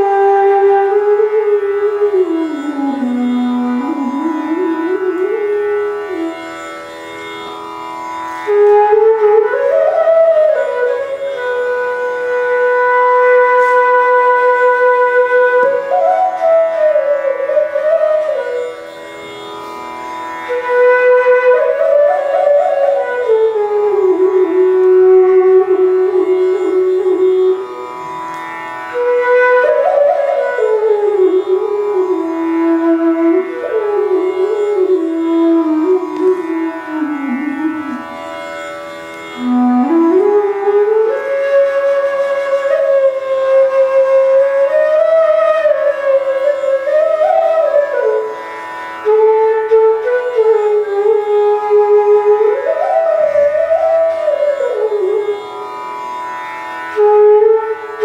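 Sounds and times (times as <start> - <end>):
bamboo flute playing slow melody: 0.0 - 6.5, 8.5 - 18.7, 20.5 - 27.8, 28.9 - 38.2, 39.4 - 48.4, 49.0 - 55.3, 56.9 - 58.0.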